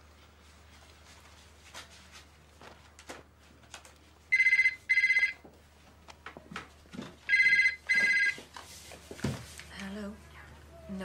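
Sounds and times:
telephone ringing: 4.3 - 5.4, 7.3 - 8.4.

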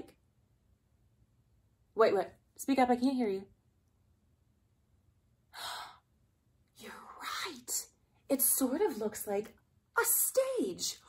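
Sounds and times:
woman speaking: 2.0 - 3.5, 6.8 - 11.0
woman breathing: 5.5 - 6.1.

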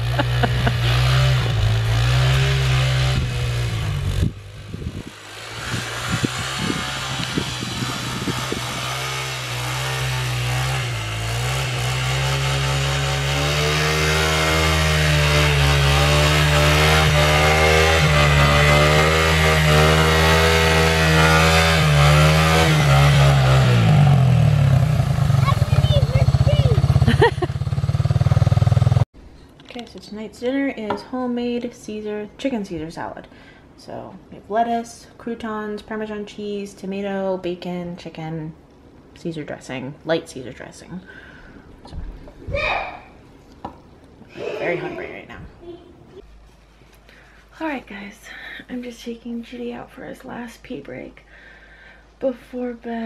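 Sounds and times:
atv engine revving: 0.0 - 29.0.

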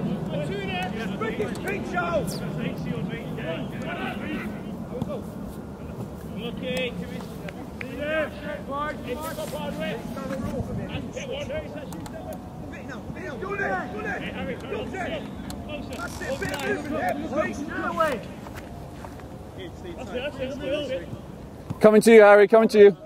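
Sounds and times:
players shouting in distance: 0.0 - 18.4.

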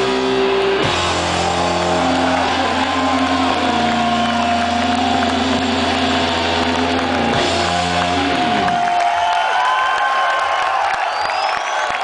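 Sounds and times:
distorted electric guitar droning: 0.0 - 8.9.

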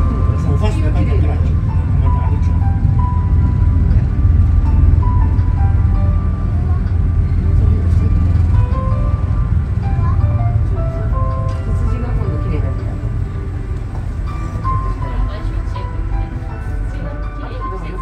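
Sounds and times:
monorail drive hum: 0.0 - 18.0.

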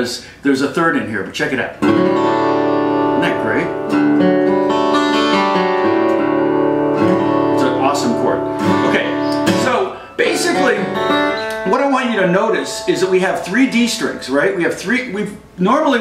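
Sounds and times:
acoustic guitar chord strummed: 1.8 - 15.0.

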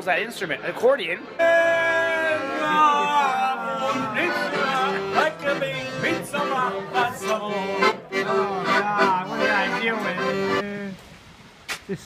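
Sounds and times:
man singing along: 1.4 - 10.6
piano accordion playing: 1.4 - 10.6.

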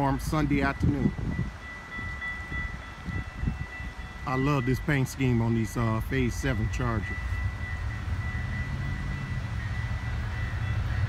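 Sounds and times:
distant train rumble: 0.0 - 11.0.

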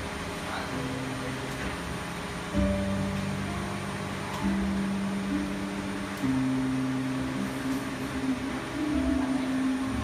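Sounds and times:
sustained low music notes: 0.0 - 10.0.

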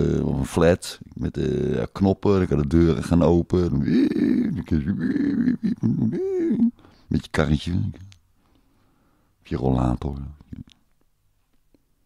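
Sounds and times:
man making wordless vocal sounds: 0.0 - 8.2, 9.5 - 10.8.

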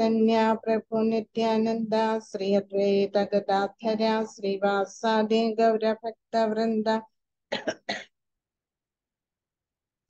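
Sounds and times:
woman clearing her throat: 7.5 - 8.1.

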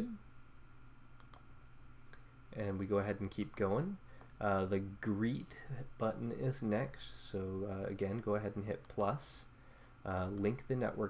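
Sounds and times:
computer mouse clicks: 1.2 - 1.5.

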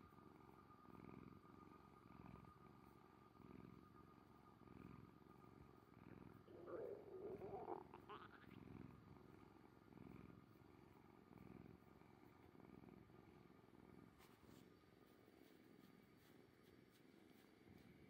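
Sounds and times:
cat purring: 0.1 - 18.0.

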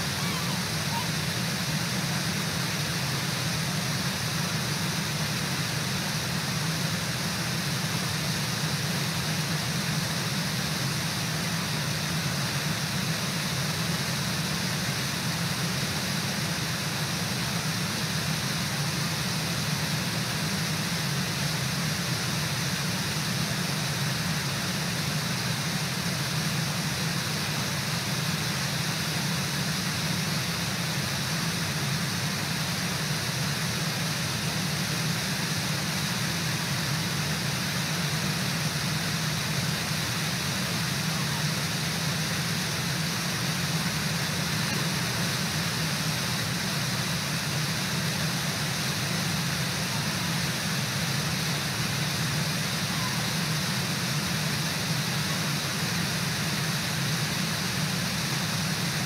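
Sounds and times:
waterfall rushing: 0.0 - 6.2, 29.9 - 59.0.

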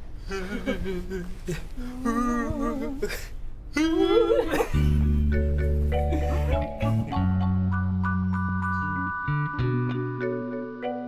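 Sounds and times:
person humming wavering oooo: 0.2 - 3.1, 3.8 - 5.0
person laughing: 0.3 - 3.2, 3.8 - 5.1, 6.0 - 7.4.

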